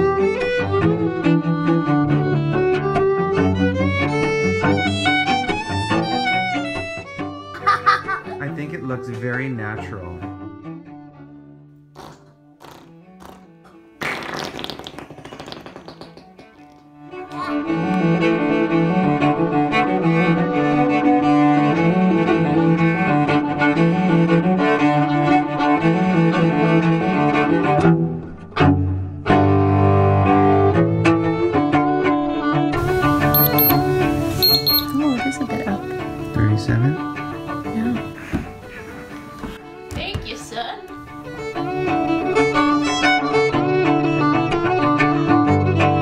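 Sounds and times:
string music: 0.0s - 11.8s, 17.0s - 46.0s
soft background music: 8.3s - 10.6s, 32.8s - 44.0s
child blowing a raspberry: 12.0s - 15.8s
thermometer high beeps: 33.2s - 35.4s.

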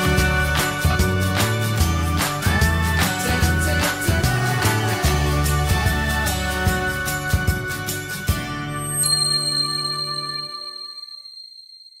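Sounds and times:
bell-like chime ringing: 8.6s - 12.0s.

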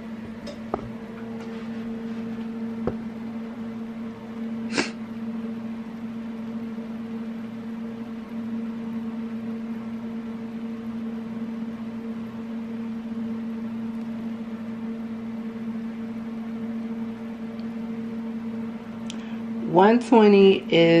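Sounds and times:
appliance motor humming: 0.0s - 4.9s.

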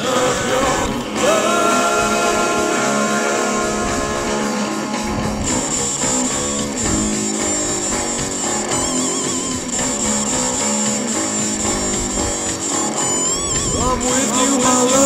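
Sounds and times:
electric guitar vibrato note: 0.0s - 15.0s
rock band playing: 0.0s - 15.0s.

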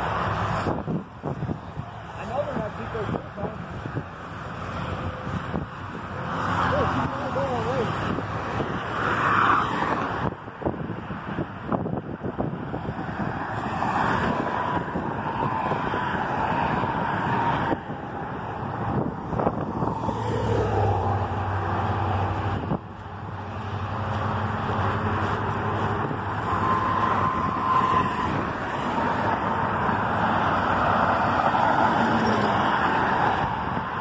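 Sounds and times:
cars passing on road: 0.0s - 34.0s.

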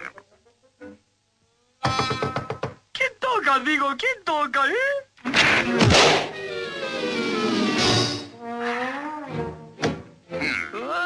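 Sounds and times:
cartoon music bending melody: 6.3s - 9.7s.

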